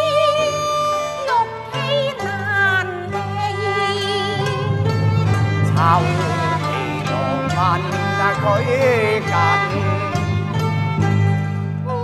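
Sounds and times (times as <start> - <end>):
low musical accompaniment: 2.4 - 12.0
opera singing with vibrato: 5.7 - 10.1.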